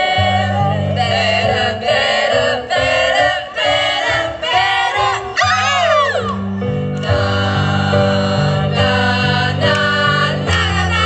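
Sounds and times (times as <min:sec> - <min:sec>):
women's vocal group singing: 0:00.0 - 0:05.4, 0:07.0 - 0:11.0
keyboard accompaniment: 0:00.0 - 0:11.0.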